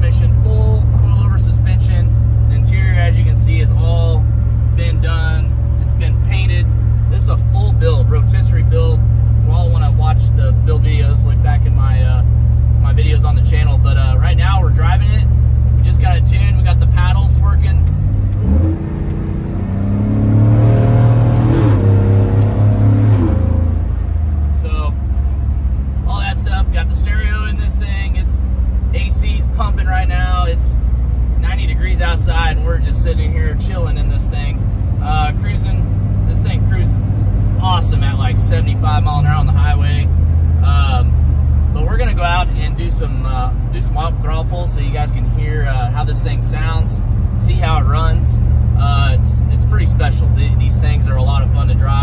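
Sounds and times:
truck engine droning in cabin: 0:00.0 - 0:52.0.

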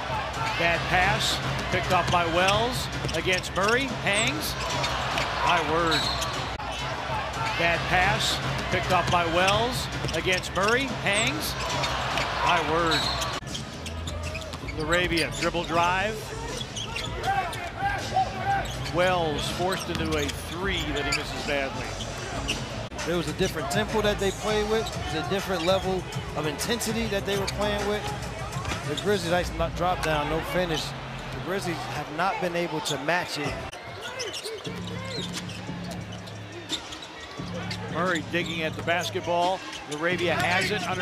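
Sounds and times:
arena crowd noise: 0:00.0 - 0:41.0
shoes squeaking on hardwood: 0:32.9 - 0:41.0.

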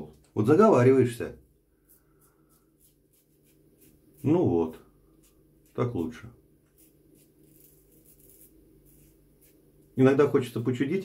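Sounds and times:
safety razor scraping stubble: 0:01.9 - 0:04.5, 0:05.2 - 0:09.6.

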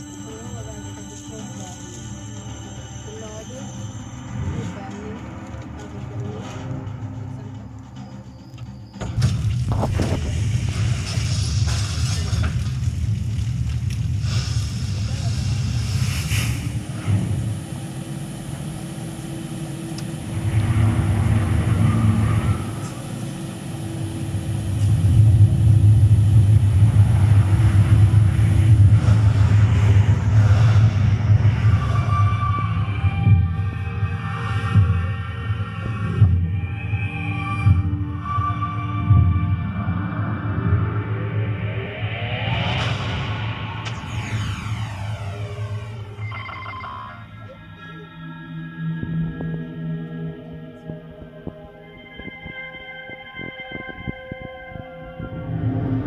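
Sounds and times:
film music: 0:00.0 - 0:56.0
deep rumble with rushing hiss: 0:09.3 - 0:37.8, 0:39.0 - 0:46.7.

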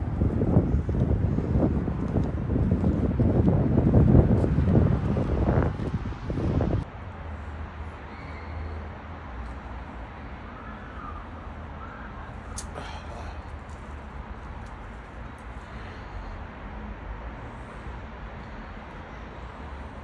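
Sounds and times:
wind buffeting microphone: 0:00.0 - 0:06.9.

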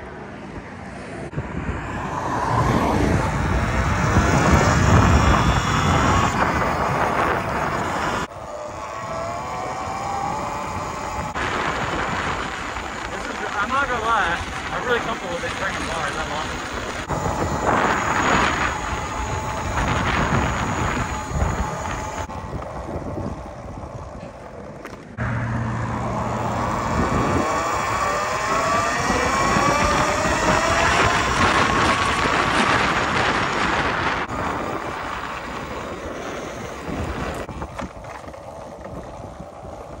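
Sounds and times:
wind rushing over microphone: 0:00.0 - 0:40.0
electric motor whine: 0:01.6 - 0:40.0.

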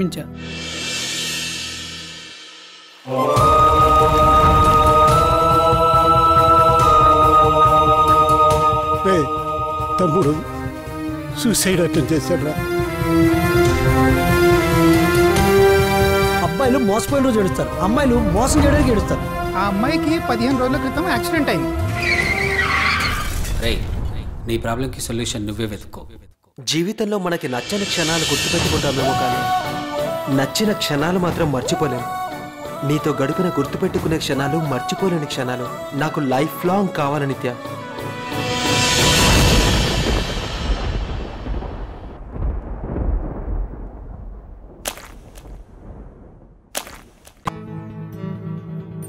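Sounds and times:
tyres screeching in a skid: 0:21.8 - 0:23.6
low rumble: 0:38.5 - 0:46.7.

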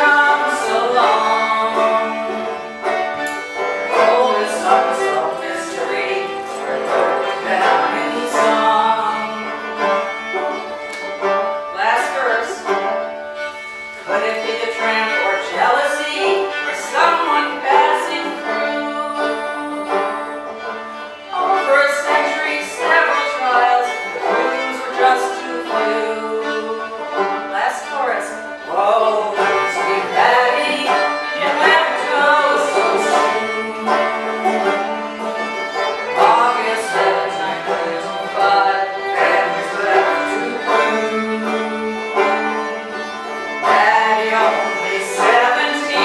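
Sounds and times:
banjo picking: 0:00.0 - 0:46.0
fiddle playing: 0:00.0 - 0:46.0.

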